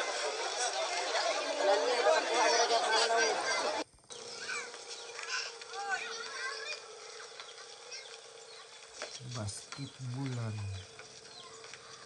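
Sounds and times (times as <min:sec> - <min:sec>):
people talking over one another: 0:00.0 - 0:03.8.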